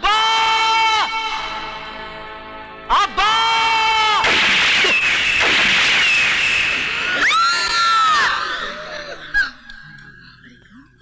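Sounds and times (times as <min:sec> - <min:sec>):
high-pitched screams: 0:02.9 - 0:09.6
pistol shot crack: 0:04.2 - 0:07.2.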